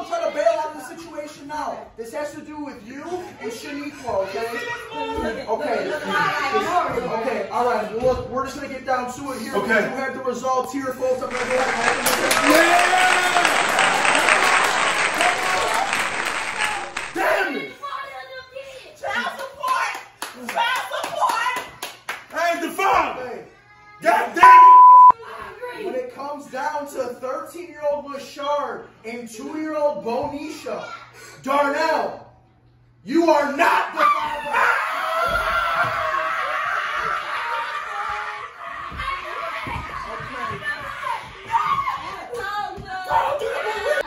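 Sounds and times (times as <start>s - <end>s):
sharp hand claps: 11.3s - 17.2s
excited voices exclaiming: 11.3s - 18.5s, 33.6s - 44.0s.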